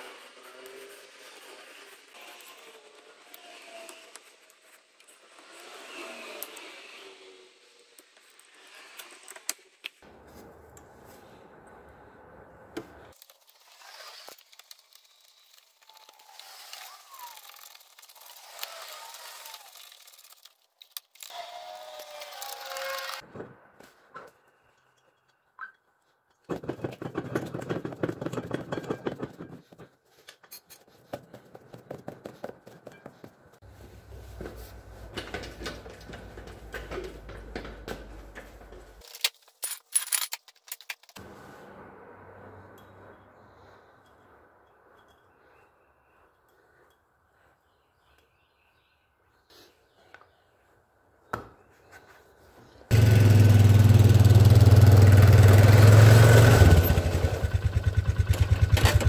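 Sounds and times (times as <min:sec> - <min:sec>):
metal scraping and squeaks: 0:21.1 - 0:23.2.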